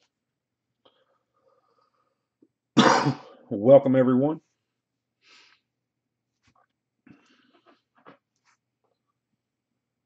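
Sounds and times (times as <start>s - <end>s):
person coughing or sneezing: 2.8s - 3.4s.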